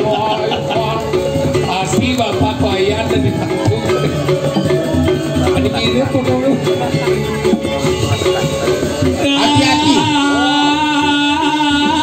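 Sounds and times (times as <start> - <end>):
gamelan ensemble playing: 0.0 - 12.0.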